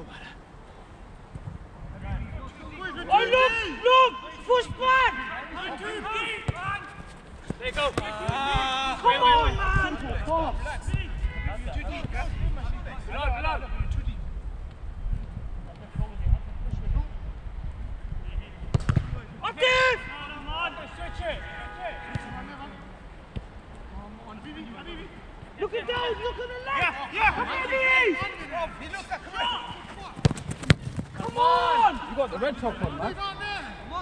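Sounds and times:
footballers shouting: 2.5s - 13.7s, 19.4s - 23.1s, 24.3s - 34.0s.

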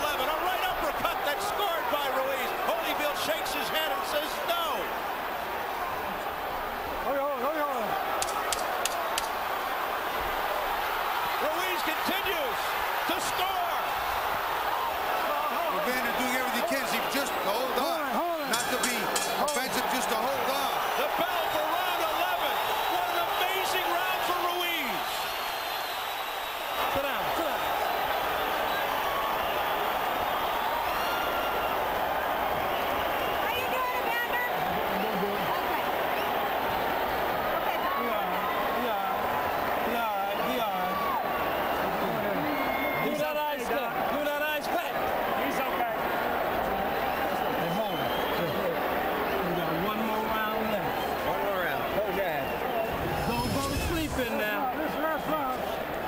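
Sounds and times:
crowd shouting: 0.0s - 56.0s.

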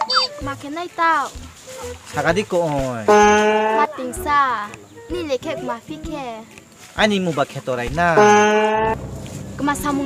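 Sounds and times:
cow mooing: 3.1s - 4.0s.

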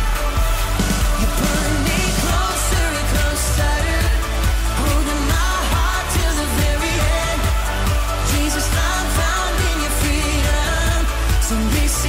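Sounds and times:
pop worship song with singing: 0.0s - 12.0s.

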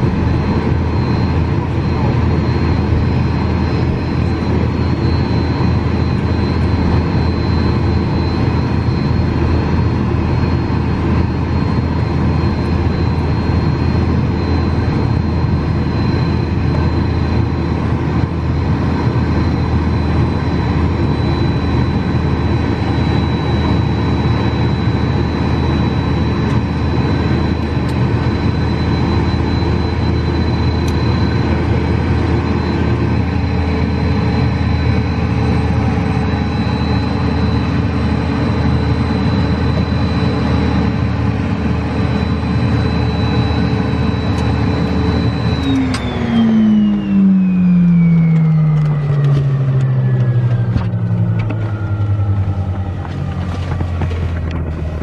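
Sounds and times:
jet engines whining: 0.0s - 55.0s.

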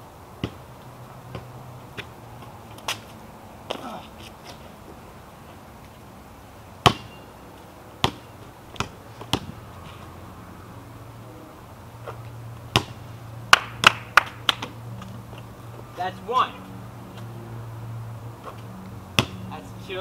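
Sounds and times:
basketball bouncing on pavement: 0.4s - 5.0s, 6.8s - 10.1s, 12.0s - 16.0s, 18.4s - 19.6s.

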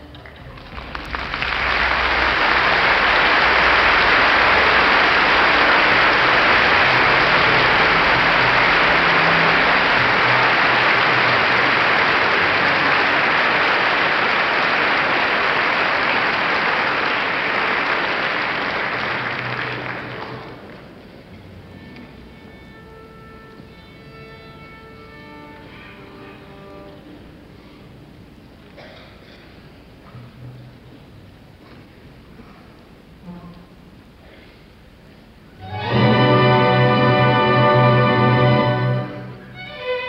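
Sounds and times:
audience applauding: 0.0s - 21.2s.

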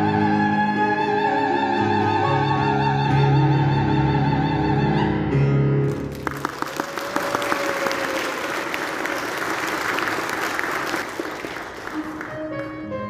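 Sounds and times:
soprano singing with piano: 0.0s - 5.8s
audience applauding: 5.8s - 12.8s.

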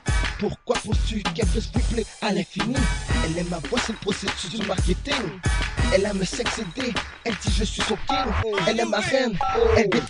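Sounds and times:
heavy bass drum: 0.1s - 8.7s
rapping over a beat: 0.1s - 10.0s.

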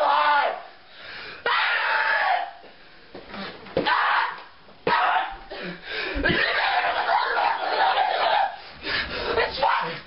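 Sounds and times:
boy screaming and yelling: 0.0s - 0.7s, 1.4s - 2.6s, 3.8s - 5.5s, 6.2s - 8.6s, 9.3s - 10.0s.

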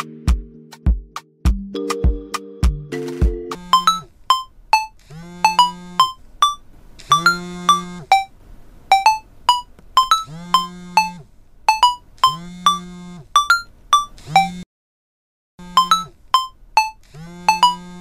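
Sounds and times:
phone musical ringtone: 0.0s - 0.3s, 1.7s - 8.3s, 8.9s - 12.8s, 13.4s - 14.5s, 15.7s - 17.9s.

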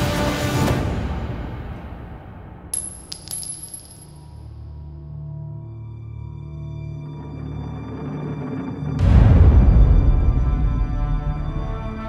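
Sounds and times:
metal casing bouncing on concrete: 2.8s - 4.6s.

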